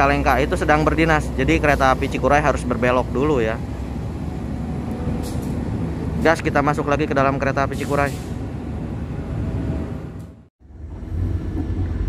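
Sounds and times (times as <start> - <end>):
low hum inside train coach: 0.0 - 12.0
low rumble of trains: 0.0 - 12.0.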